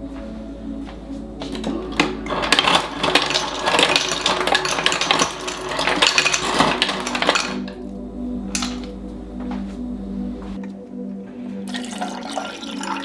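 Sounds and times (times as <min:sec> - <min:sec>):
ice cubes clattering into glass: 0:02.2 - 0:07.8, 0:08.6 - 0:08.9.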